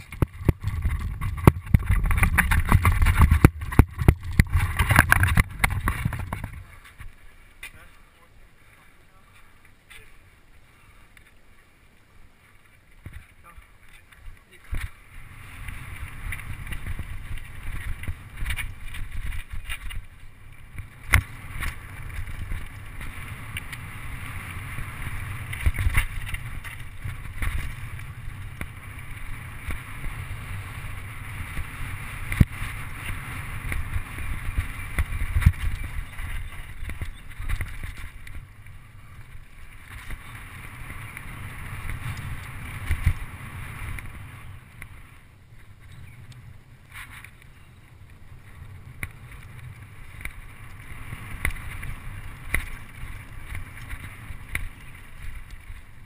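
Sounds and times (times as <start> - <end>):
bike rattling and knocking: 0.0 - 7.1, 13.0 - 45.0, 48.4 - 56.0
wind on microphone: 0.0 - 7.2, 14.4 - 56.0
bike tyres on dirt: 0.0 - 56.0.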